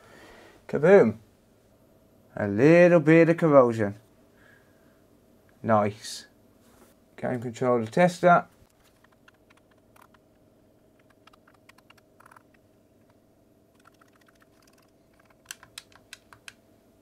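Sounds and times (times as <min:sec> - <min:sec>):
controller buttons clicking: 0:08.9 - 0:10.2, 0:11.0 - 0:13.2, 0:13.8 - 0:16.6.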